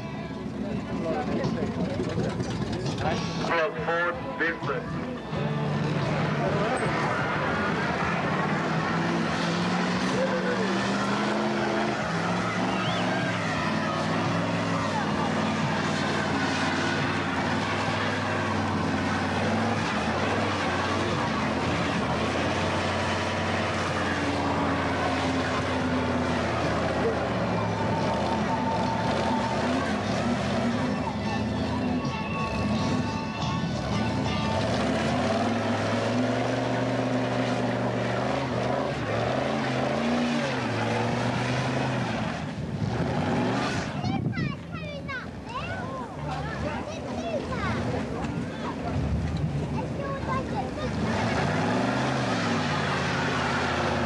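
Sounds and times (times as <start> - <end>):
truck engine at high revs: 0.0 - 54.0
tyres spinning on tarmac: 0.0 - 54.0.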